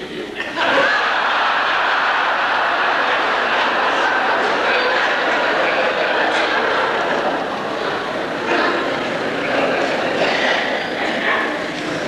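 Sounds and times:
audience laughing and applauding: 0.3 - 10.2.

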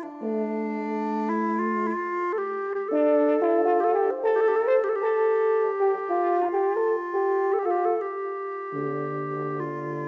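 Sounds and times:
free-reed flute melody: 0.0 - 10.0.

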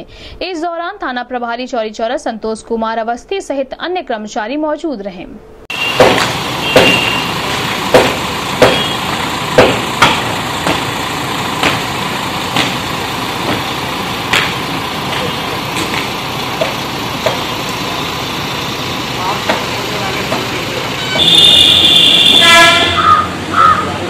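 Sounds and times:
vehicle engine idling: 5.7 - 24.0
sharp knocks and clicks: 6.0 - 8.9, 9.6 - 11.0, 11.6 - 11.9, 12.5 - 13.7, 14.3 - 17.5, 19.4 - 19.7.

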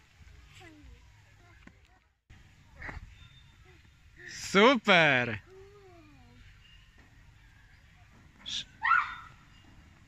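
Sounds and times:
child shouting or squealing: 8.8 - 9.4.

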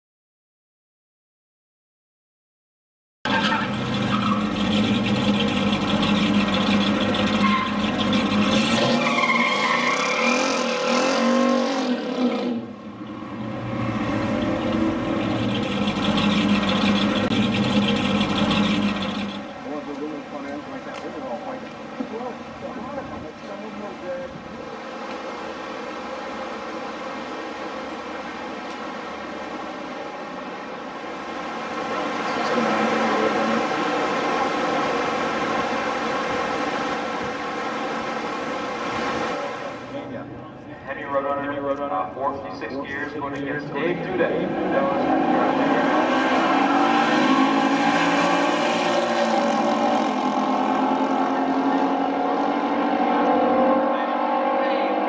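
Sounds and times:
loud car engine running: 3.3 - 9.0, 12.0 - 55.0.

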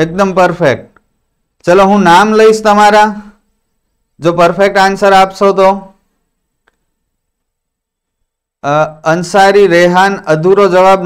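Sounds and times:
faint click: 6.6 - 7.5.

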